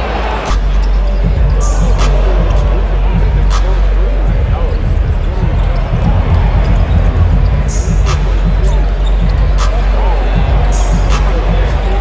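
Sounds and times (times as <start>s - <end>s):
crowd hubbub: 0.0s - 12.0s.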